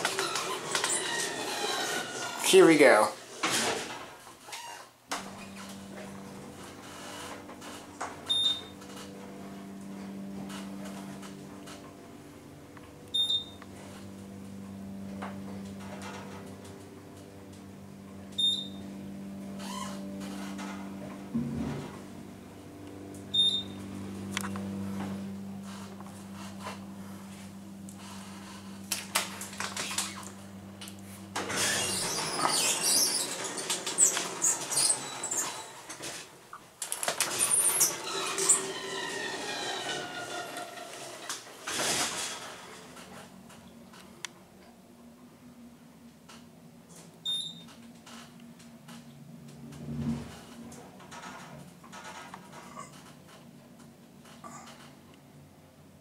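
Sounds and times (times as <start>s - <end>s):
elevator doors sliding and rumbling: 0.0s - 4.3s, 5.1s - 44.6s, 47.3s - 54.7s
elevator pump motor humming: 5.1s - 36.0s
short high beeps: 23.3s - 23.8s.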